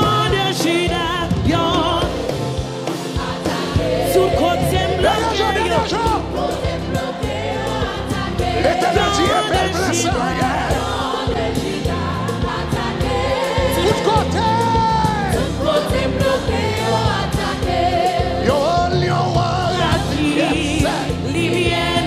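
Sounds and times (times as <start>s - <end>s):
gospel band playing: 0.0s - 22.0s
voices singing together: 0.0s - 22.0s.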